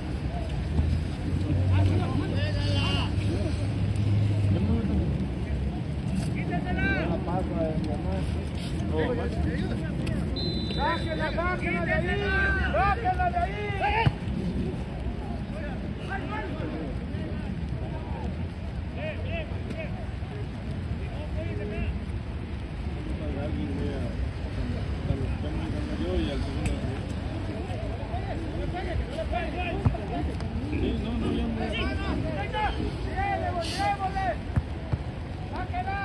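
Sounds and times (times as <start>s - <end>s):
players shouting: 9.8s - 14.4s, 27.5s - 36.0s.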